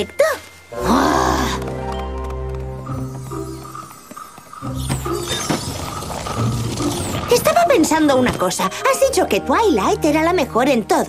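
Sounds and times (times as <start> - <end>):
cartoon background music: 4.6 - 11.0.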